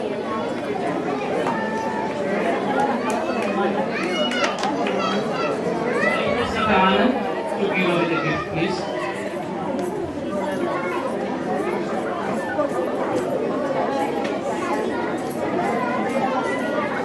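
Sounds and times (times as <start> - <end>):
audience chatter: 0.0 - 17.0.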